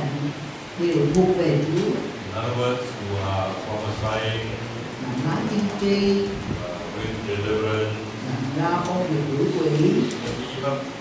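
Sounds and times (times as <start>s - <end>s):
woman speaking into microphone: 0.0s - 2.2s, 5.0s - 6.5s, 8.2s - 10.3s
man speaking into microphone: 2.2s - 5.0s, 6.5s - 8.5s, 10.2s - 11.0s.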